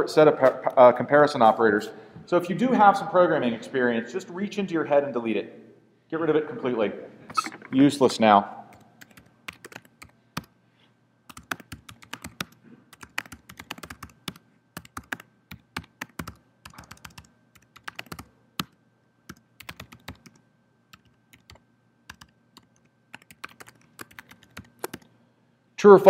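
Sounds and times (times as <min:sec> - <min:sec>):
laptop keyboard typing: 0:08.7 - 0:10.5, 0:11.3 - 0:25.1.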